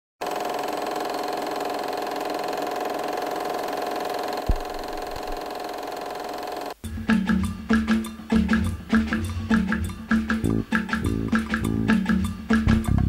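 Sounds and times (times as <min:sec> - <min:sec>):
film projector mechanical rattle: 0:00.2 - 0:06.8
short low thud: 0:04.5 - 0:05.4.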